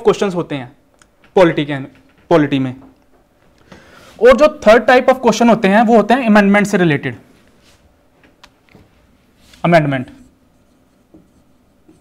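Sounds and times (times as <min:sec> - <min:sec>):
marker pen on whiteboard: 0:07.4 - 0:12.0.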